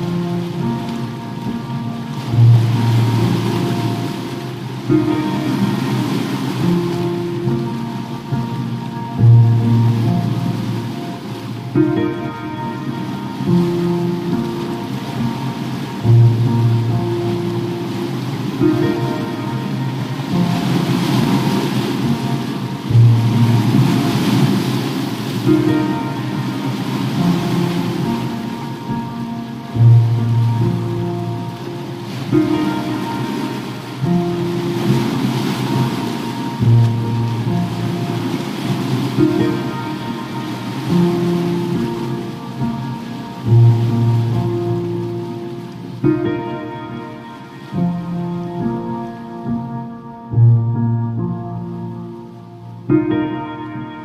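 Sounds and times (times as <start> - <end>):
ocean waves surging: 0.0 - 54.0
slow calm piano music: 0.0 - 54.0.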